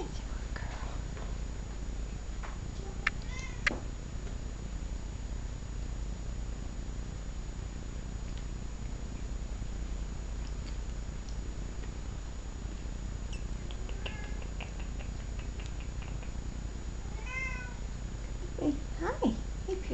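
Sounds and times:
low background hum: 0:00.0 - 0:19.9
cat meowing: 0:03.2 - 0:03.8, 0:17.1 - 0:17.8.

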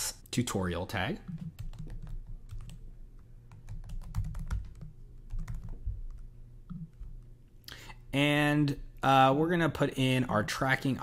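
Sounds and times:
typing on keyboard: 0:01.3 - 0:02.8, 0:03.5 - 0:07.0.

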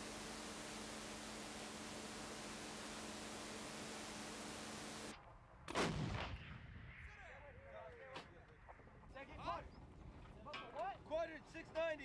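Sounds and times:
steady hiss: 0:00.0 - 0:05.1
loud gun blast: 0:05.7 - 0:06.8.

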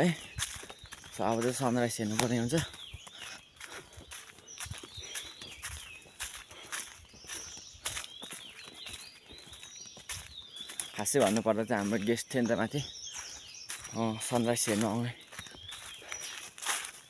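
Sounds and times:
birds chirping: 0:00.0 - 0:17.0
footsteps on forest path: 0:00.0 - 0:17.0.

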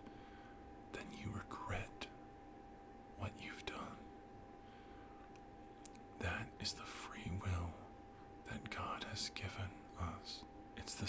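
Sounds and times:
man whispering: 0:00.9 - 0:02.2, 0:03.2 - 0:04.1, 0:06.2 - 0:11.0.

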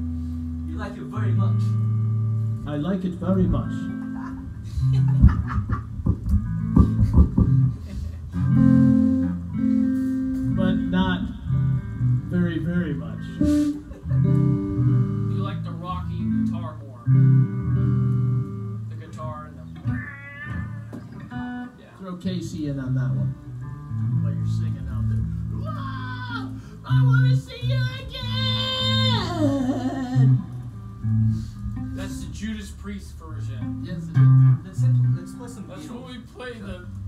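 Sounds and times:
electric guitar notes: 0:00.0 - 0:37.0.

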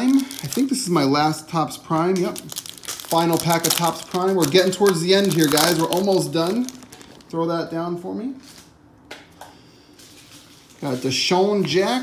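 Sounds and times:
cards and foil rustling: 0:00.0 - 0:07.4, 0:10.0 - 0:12.0.

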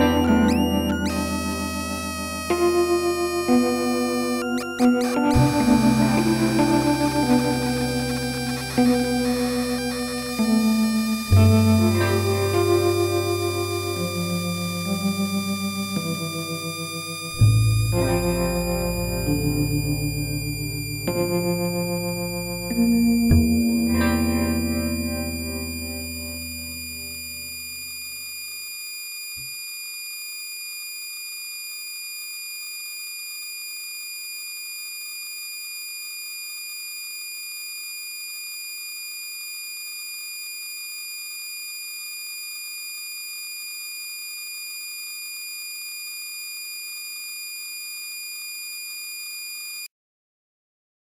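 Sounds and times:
low distorted chord: 0:00.0 - 0:27.7
high-pitched sine tones drone: 0:00.0 - 0:49.9.

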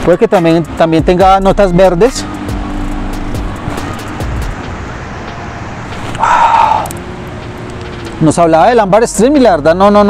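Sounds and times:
road traffic: 0:00.0 - 0:10.0.

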